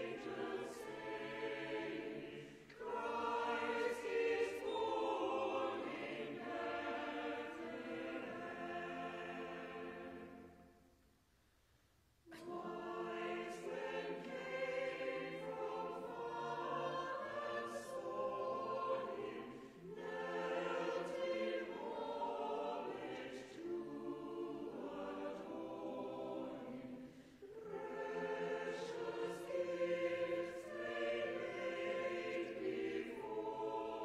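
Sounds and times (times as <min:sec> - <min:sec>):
choir singing a carol: 0:00.0 - 0:11.0, 0:12.2 - 0:34.0.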